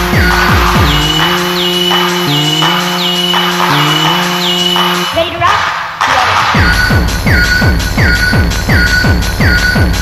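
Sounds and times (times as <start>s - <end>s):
held synth tone stepping up in pitch: 0.0s - 5.2s.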